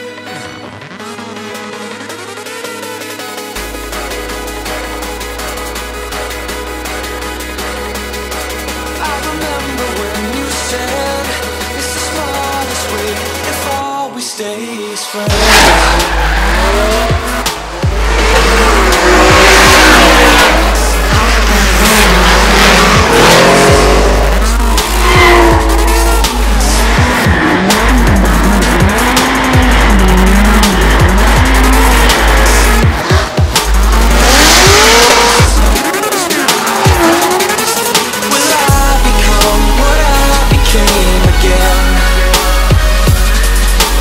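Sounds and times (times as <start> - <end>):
deep music bass line: 0.0 - 13.9, 15.3 - 44.0
car engines revving: 0.3 - 13.8, 15.1 - 44.0
tyres squealing on asphalt: 14.8 - 42.4.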